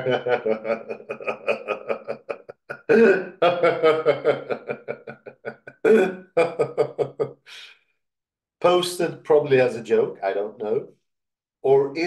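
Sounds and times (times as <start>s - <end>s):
man laughing: 0.0s - 7.6s.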